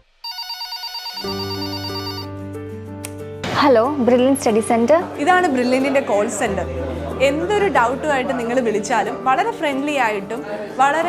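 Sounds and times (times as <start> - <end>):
telephone ringing: 0.2 - 2.3
background music low notes: 1.2 - 11.0.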